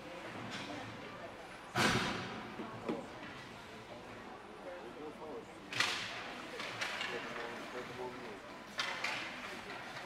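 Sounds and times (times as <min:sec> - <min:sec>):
faint rink chatter: 0:00.0 - 0:10.0.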